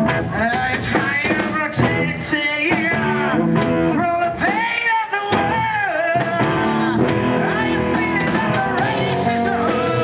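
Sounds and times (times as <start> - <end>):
blues-rock band playing: 0.0 - 10.0
drum kit with cymbals: 0.0 - 10.0
man singing: 0.0 - 10.0.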